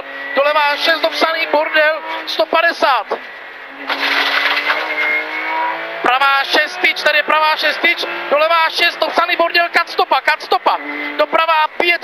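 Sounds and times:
car engine from inside cabin: 0:00.0 - 0:09.6.

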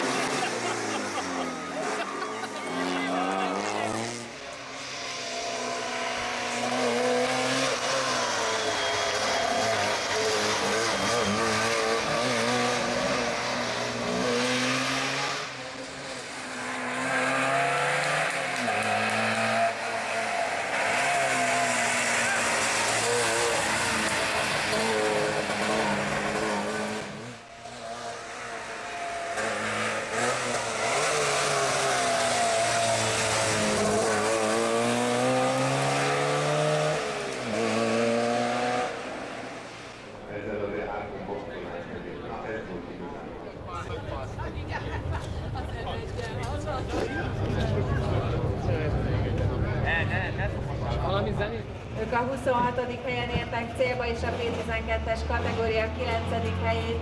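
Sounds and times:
rally car engine revving: 0:00.0 - 0:57.0.

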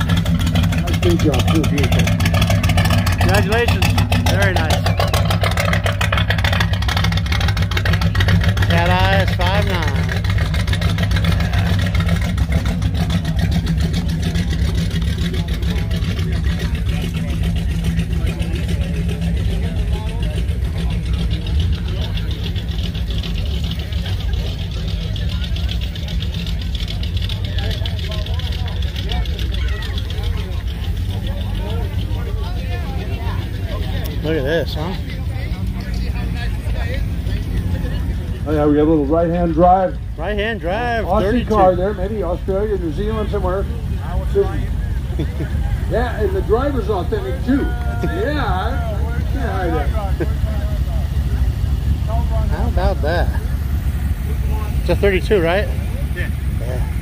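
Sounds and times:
car engines rumbling: 0:00.0 - 0:57.0.

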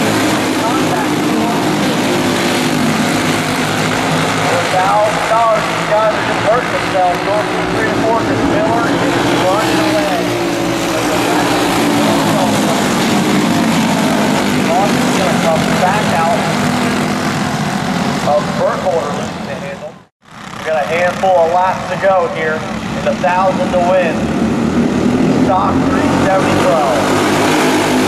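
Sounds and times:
kart engines revving: 0:00.0 - 0:28.0.

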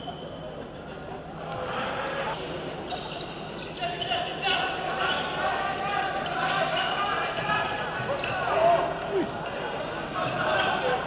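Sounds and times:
sneakers squeaking: 0:02.8 - 0:09.4.

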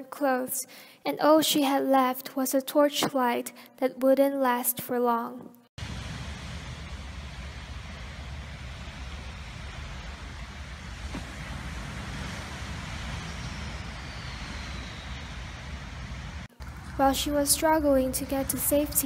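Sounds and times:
surf: 0:05.8 - 0:16.5
wind on microphone: 0:05.8 - 0:16.5
deep rumble: 0:05.8 - 0:17.8.

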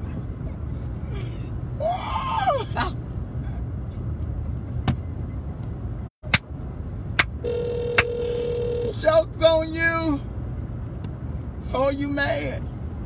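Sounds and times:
car interior rumble: 0:00.0 - 0:13.0
telephone tone on speakerphone: 0:07.4 - 0:09.0.

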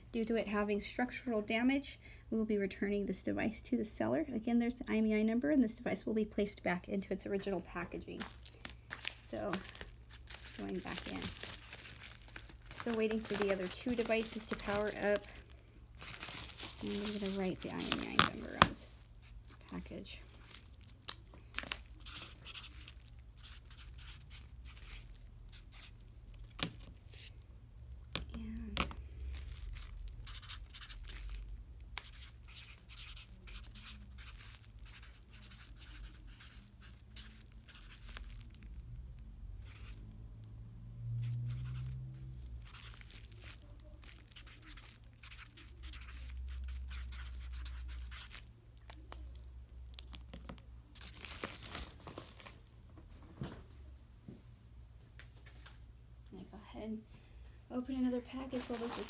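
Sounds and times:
padded mailer crinkling: 0:08.1 - 0:19.0, 0:58.5 - 0:59.0
scratchy paper noises: 0:08.2 - 0:20.7, 0:21.7 - 0:26.0, 0:29.3 - 0:38.5, 0:39.6 - 0:40.0, 0:42.6 - 0:48.5.

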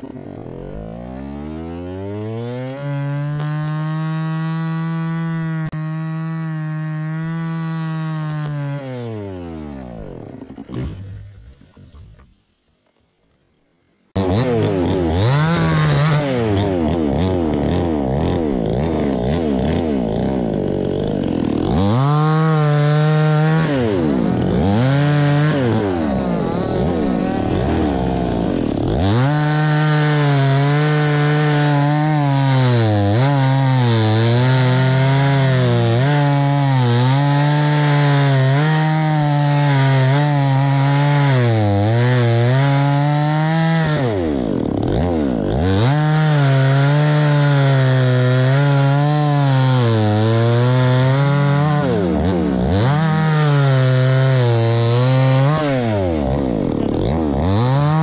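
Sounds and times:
chainsaw revving: 0:00.0 - 0:12.3, 0:14.2 - 0:58.0
chainsaw cutting wood: 0:00.0 - 0:12.4, 0:14.2 - 0:58.0.

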